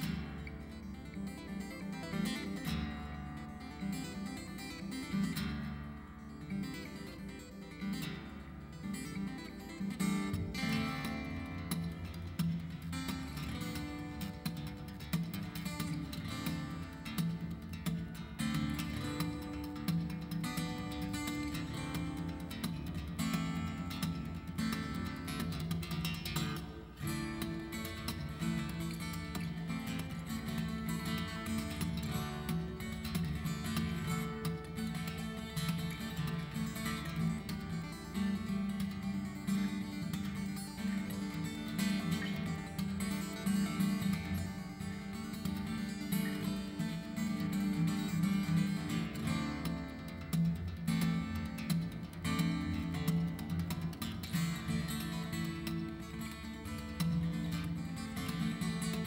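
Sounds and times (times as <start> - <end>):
fingerstyle acoustic guitar: 0.0 - 59.0.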